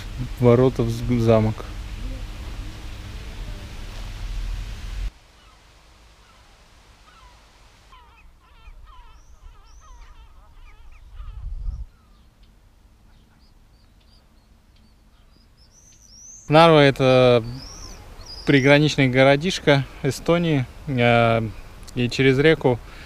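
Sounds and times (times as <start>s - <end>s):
noisy rush: 0.0s - 5.1s
birds calling: 0.0s - 23.0s
faint high bird chirps: 7.1s - 16.6s, 17.4s - 18.8s.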